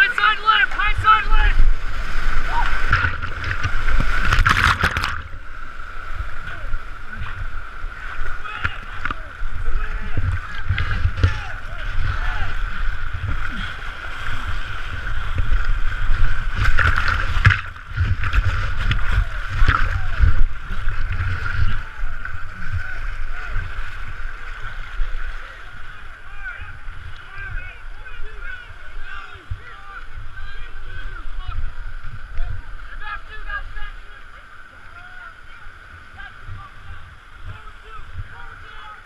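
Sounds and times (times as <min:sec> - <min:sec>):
rushing whitewater: 0:00.0 - 0:39.0
water splashing over camera: 0:00.0 - 0:39.0.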